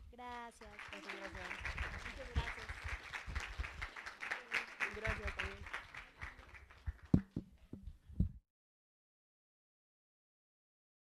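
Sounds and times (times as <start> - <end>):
scattered applause: 0.0 - 7.7.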